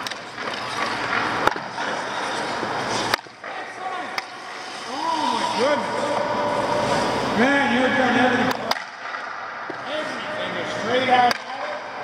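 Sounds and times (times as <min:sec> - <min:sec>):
skates scraping on ice: 0:00.0 - 0:07.4.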